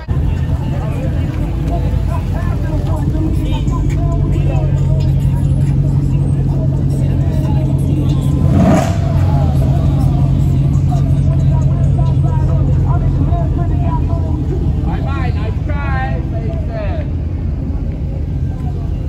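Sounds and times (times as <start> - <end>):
background voices: 0.0 - 19.0
car engine idling: 0.0 - 19.0.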